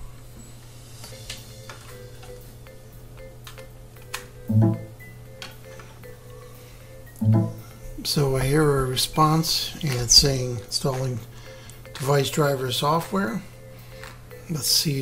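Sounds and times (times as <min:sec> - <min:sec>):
low computer hum: 0:00.0 - 0:15.0
computer device-connect chime: 0:04.4 - 0:05.2, 0:07.2 - 0:07.7.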